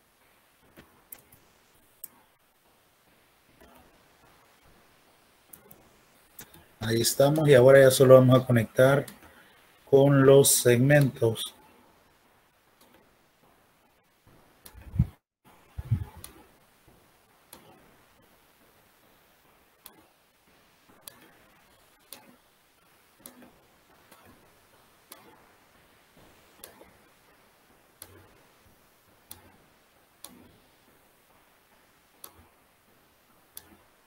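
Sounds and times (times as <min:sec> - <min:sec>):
faint computer mouse clicks: 0:06.4 - 0:06.7, 0:21.0 - 0:21.4, 0:22.0 - 0:22.4, 0:26.6 - 0:26.9, 0:28.0 - 0:28.3, 0:29.3 - 0:29.6, 0:30.2 - 0:30.6, 0:32.2 - 0:32.6, 0:33.5 - 0:33.8.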